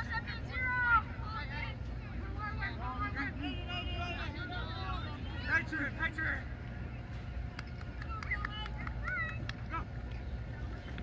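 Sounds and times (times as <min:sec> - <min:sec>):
crowd voices chattering: 0:00.0 - 0:11.0.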